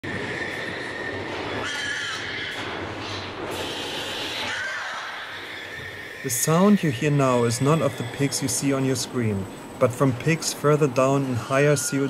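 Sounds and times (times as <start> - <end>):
pigs screaming: 0.0 - 8.6
long high squealing screams: 0.0 - 9.0.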